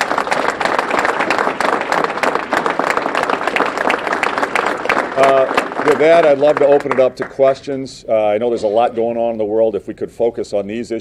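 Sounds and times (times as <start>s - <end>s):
audience applauding: 0.0s - 7.7s.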